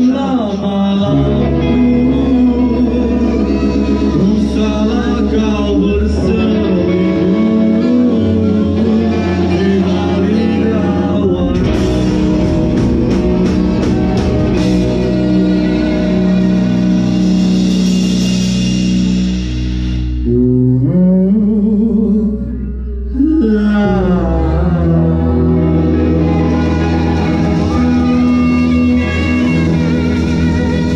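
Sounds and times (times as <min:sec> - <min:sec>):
person singing: 0:00.0 - 0:17.2, 0:20.2 - 0:30.9
live rock band: 0:00.0 - 0:30.9.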